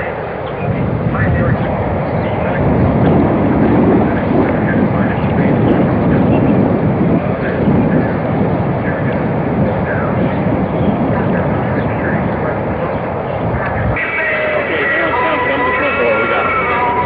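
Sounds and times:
faint voices: 0.0s - 17.0s
low street rumble: 0.0s - 17.0s.

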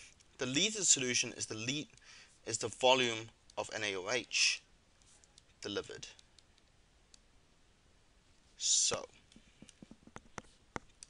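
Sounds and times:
stylus tapping on tablet screen: 9.4s - 11.0s.

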